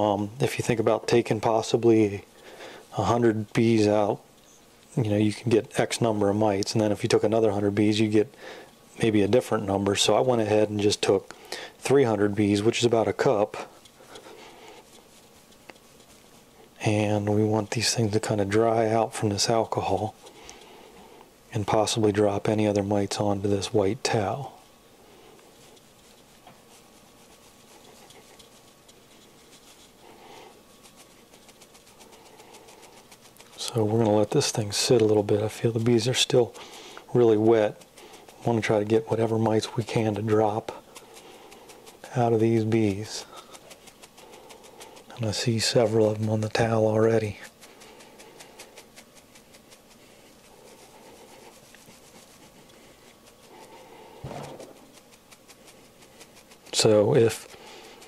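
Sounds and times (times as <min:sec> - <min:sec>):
wire mesh rustling and scraping: 0:25.5 - 0:58.0
short bump: 0:54.2 - 0:54.8.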